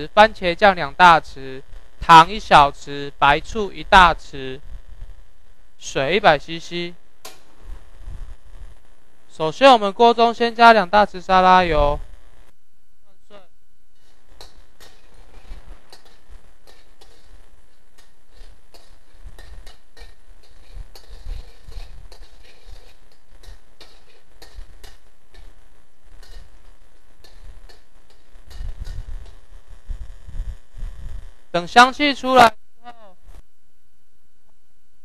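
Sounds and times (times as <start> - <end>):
garlic sizzling in hot oil: 0.2 - 9.4, 13.9 - 31.5
metal spatula scraping a wok: 13.9 - 30.3.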